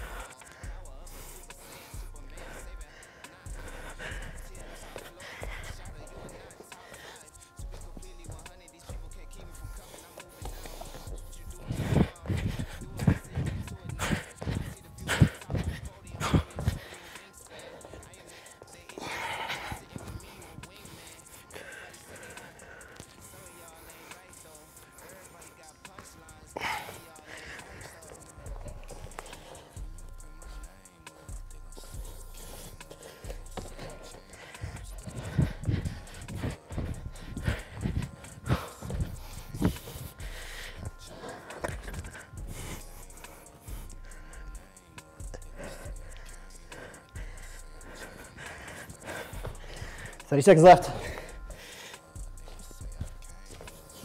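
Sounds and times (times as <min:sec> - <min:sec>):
hard breathing and exhales: 0:00.0 - 0:54.0
quiet background music: 0:00.0 - 0:54.0
feet thudding on exercise mat: 0:09.8 - 0:18.1, 0:31.9 - 0:42.7.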